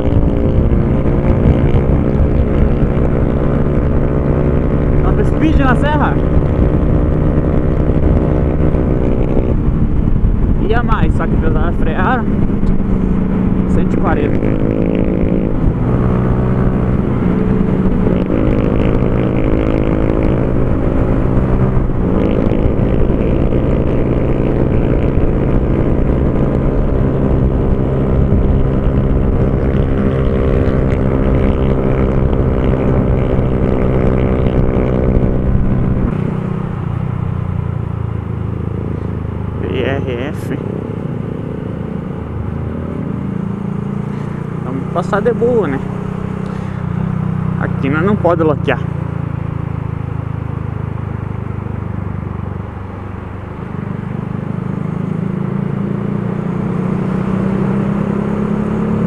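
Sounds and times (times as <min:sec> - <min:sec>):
motorcycle engine at high revs: 0:00.0 - 0:59.0.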